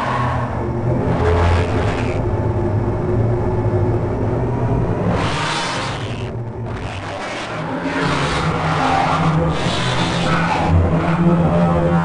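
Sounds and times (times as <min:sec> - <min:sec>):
low synth drones: 0:00.0 - 0:12.0.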